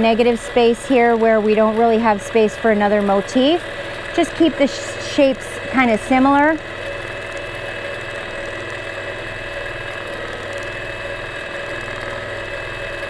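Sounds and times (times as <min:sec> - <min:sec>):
quilting machine stitching: 0:00.0 - 0:13.0.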